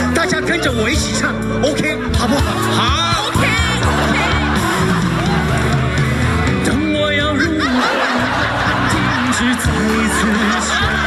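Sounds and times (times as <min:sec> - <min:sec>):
audience laughter: 0:01.7 - 0:11.0.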